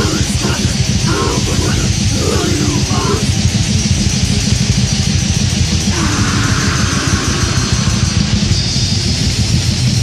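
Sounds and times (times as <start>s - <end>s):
bass guitar: 0.0s - 10.0s
distorted electric guitars: 0.0s - 10.0s
drums: 0.0s - 10.0s.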